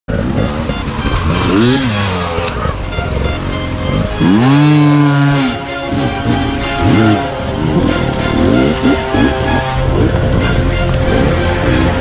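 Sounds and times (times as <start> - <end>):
background music: 0.1 - 12.0
dirt bike engine revving: 0.1 - 12.0.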